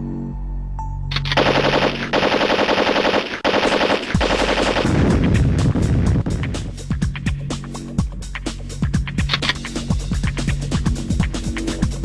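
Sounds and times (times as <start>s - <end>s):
background music: 0.0s - 12.0s
machine-gun fire: 1.2s - 5.7s.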